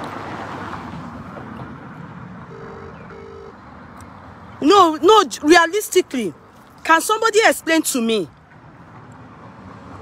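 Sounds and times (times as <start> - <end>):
vehicle passing: 0.0 - 10.0
short beeps: 2.5 - 3.6.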